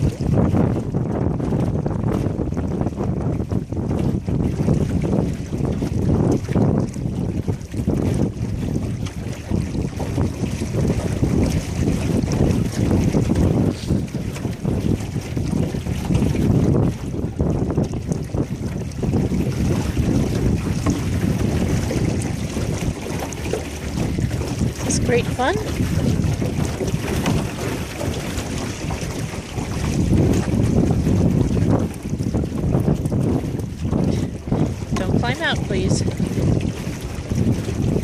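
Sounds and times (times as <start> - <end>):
water rushing along hull: 0.0 - 38.0
wind buffeting microphone: 0.0 - 38.0.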